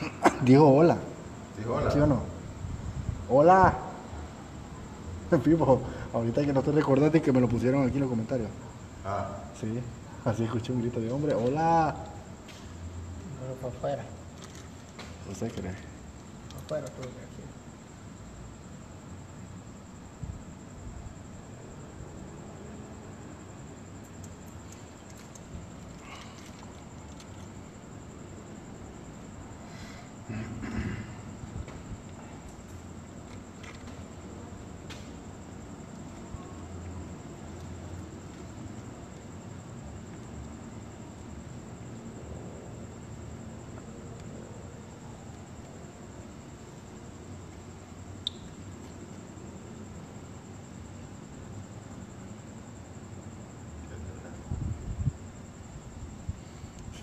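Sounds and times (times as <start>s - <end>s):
constant high-pitched whine: 0.0s - 57.0s
sharp click: 48.2s - 48.6s.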